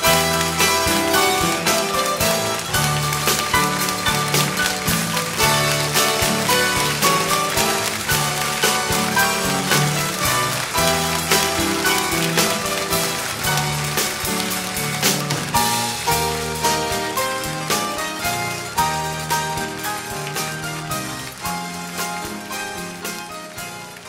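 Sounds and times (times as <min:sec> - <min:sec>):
small live band playing: 0:00.0 - 0:24.0.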